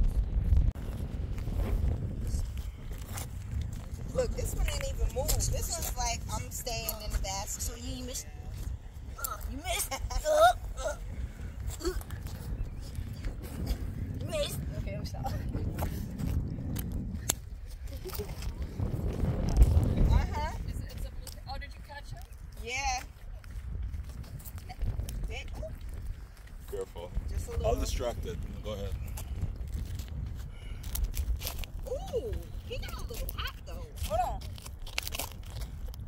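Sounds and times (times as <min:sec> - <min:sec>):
steady low rumble: 0:00.0 - 0:36.0
wind on microphone: 0:00.0 - 0:36.0
indistinct voices talking: 0:04.0 - 0:16.3, 0:17.5 - 0:23.4, 0:31.9 - 0:34.4
person's high wavering cry: 0:10.2 - 0:11.1.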